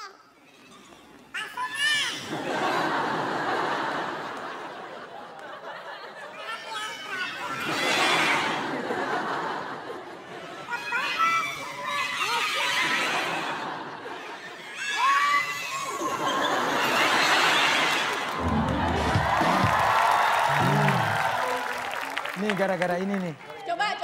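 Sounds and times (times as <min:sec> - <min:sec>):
studio audience laughing and shouting: 0:01.8 - 0:24.0
music: 0:18.4 - 0:19.9
low drawn-out voice-like sound: 0:18.4 - 0:21.4.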